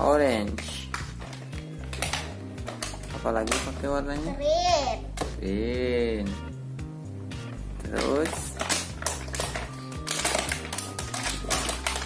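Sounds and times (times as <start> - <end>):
background music: 0.0 - 12.0
plastic packaging crinkling: 7.9 - 12.0.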